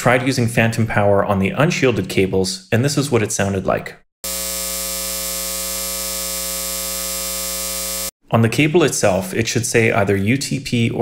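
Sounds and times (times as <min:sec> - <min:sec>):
electrical hum: 0:04.2 - 0:08.1.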